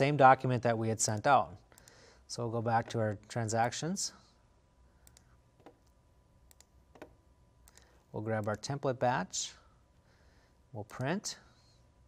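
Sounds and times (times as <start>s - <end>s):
faint computer mouse clicks: 5.0s - 8.6s.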